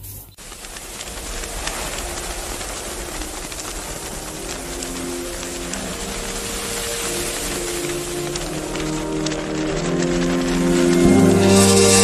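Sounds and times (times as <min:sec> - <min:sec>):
street traffic hiss: 0:00.0 - 0:12.0
sustained musical notes: 0:04.3 - 0:12.0.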